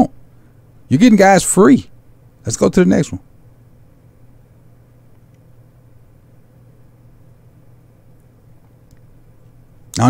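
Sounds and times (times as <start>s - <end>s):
microphone room tone hum and hiss: 0.0s - 10.0s.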